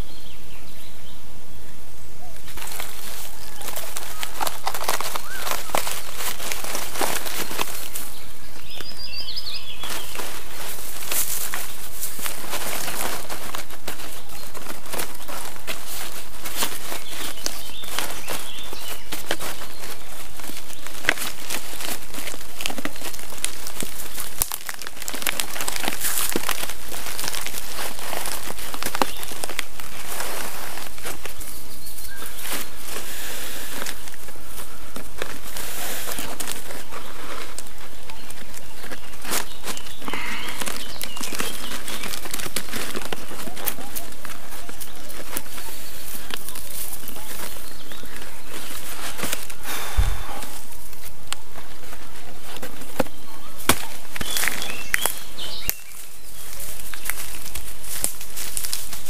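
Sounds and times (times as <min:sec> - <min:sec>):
bird chirping: 0:00.0 - 0:57.8
birch bark crackling and rustling: 0:00.0 - 0:59.0.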